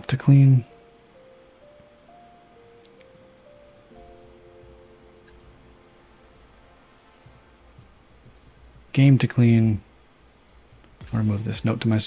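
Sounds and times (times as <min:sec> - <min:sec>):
man speaking: 0:00.0 - 0:00.7, 0:08.9 - 0:09.9, 0:11.0 - 0:12.0.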